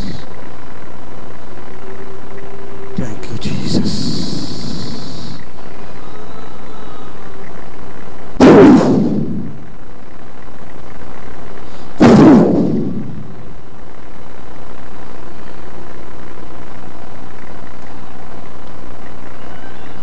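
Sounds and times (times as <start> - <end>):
loud sudden bursts: 0.0 - 5.5, 7.8 - 9.8, 11.8 - 13.6.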